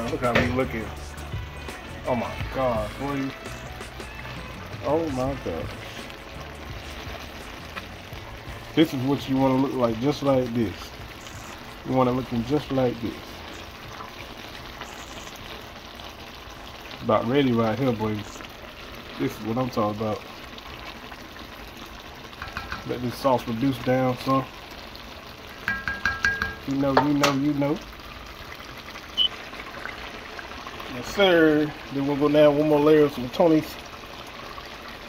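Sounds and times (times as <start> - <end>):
food sizzling in a pot: 0.0 - 35.0.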